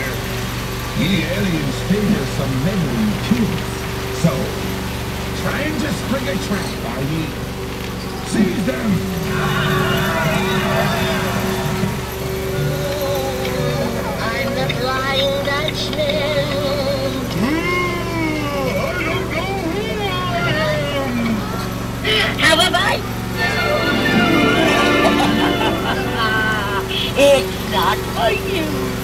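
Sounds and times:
low engine hum: 0.0 - 29.0.

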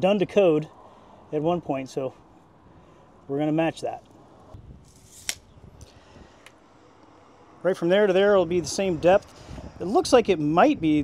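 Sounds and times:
tape measure blade retracting: 4.8 - 5.5
tape measure snap: 4.8 - 5.5.

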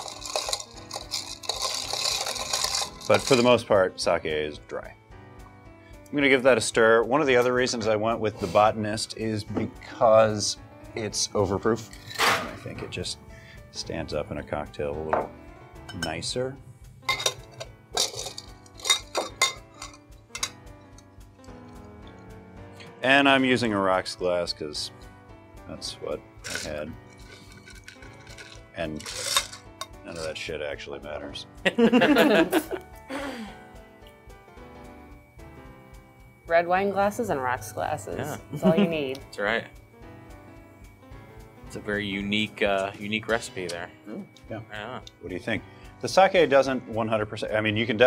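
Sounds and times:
spoon clinking against glass: 0.0 - 3.5, 15.2 - 16.3, 17.1 - 21.0, 26.5 - 30.4
background music: 0.0 - 48.0.

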